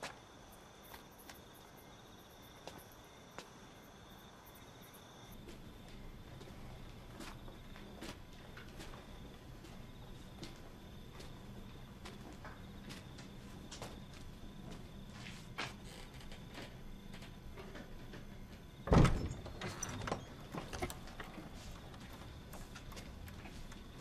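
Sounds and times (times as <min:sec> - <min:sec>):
low room hum: 0:00.1 - 0:24.0
door and latch rattling: 0:17.6 - 0:21.4
heavy door clunk: 0:17.6 - 0:21.4.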